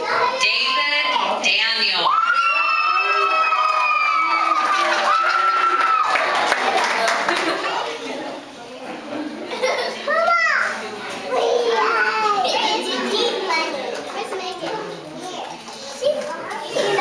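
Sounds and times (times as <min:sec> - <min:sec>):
young children chattering: 0:00.0 - 0:03.1, 0:06.7 - 0:17.0.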